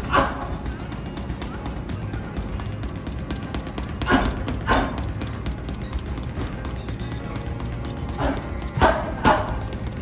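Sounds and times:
gloves hitting punching bag: 0:00.0 - 0:10.0.

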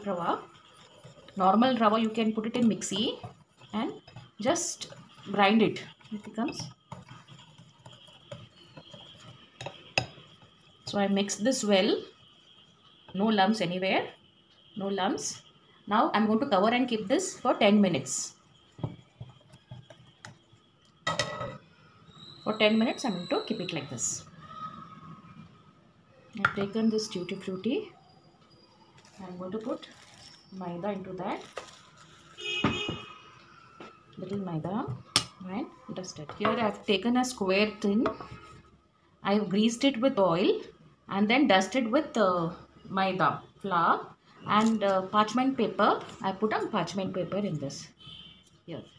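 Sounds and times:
whisk scraping glass bowl: 0:00.0 - 0:13.2.

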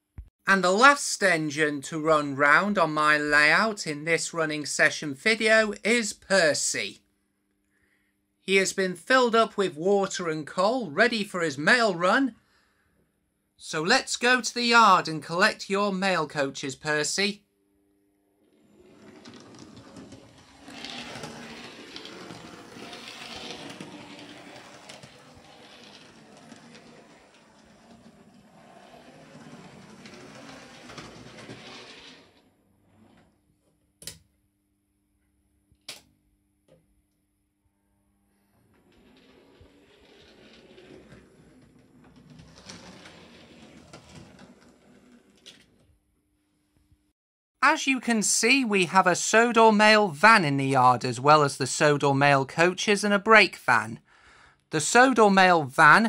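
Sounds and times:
model train motor whirring: 0:19.0 - 0:32.2.

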